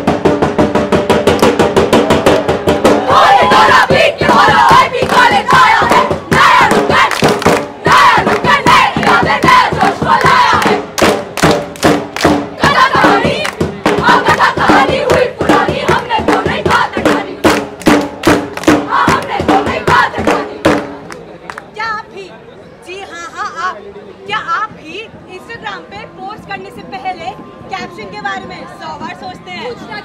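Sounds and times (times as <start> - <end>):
percussive strikes: 0.0 - 21.2
women singing and shouting: 2.9 - 10.9, 12.6 - 17.6, 18.7 - 20.8, 22.9 - 30.0.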